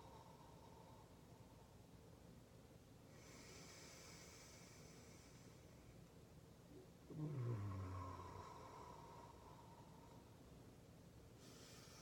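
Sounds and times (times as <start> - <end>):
woman humming low: 7.1 - 8.8.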